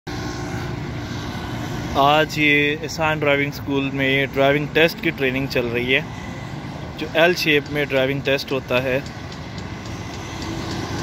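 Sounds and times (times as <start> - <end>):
faint engine hum: 0.1 - 11.0
traffic drone: 0.1 - 11.0.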